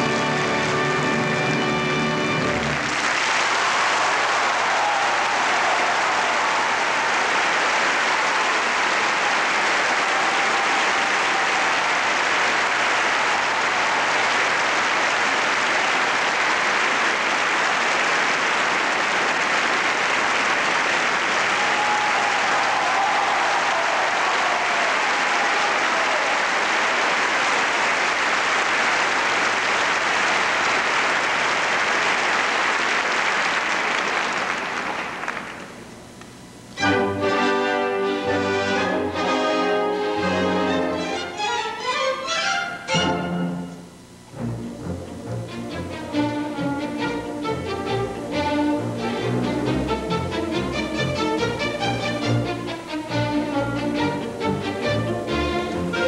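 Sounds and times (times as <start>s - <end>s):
audience applauding: 0.0s - 36.0s.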